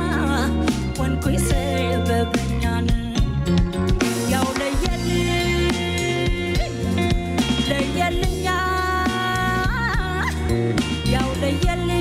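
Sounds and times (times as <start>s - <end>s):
band accompaniment: 0.0s - 12.0s
woman singing: 0.0s - 12.0s.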